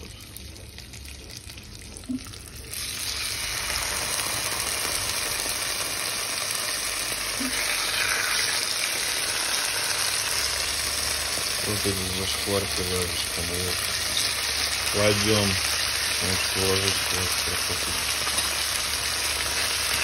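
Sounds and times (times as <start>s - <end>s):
meat sizzling in hot oil: 0.0s - 20.0s.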